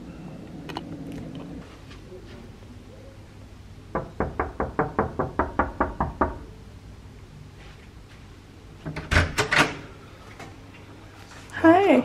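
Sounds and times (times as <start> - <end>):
rapid knocking on a door: 3.9 - 6.4.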